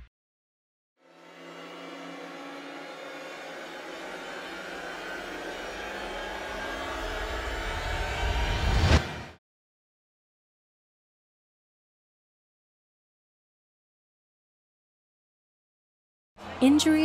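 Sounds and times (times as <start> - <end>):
whooshing riser: 1.0 - 9.4
low rumble: 3.3 - 9.4.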